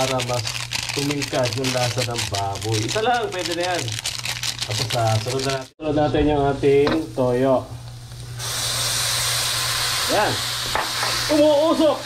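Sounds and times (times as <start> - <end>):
sauce sizzling in hot wok: 6.6 - 12.0.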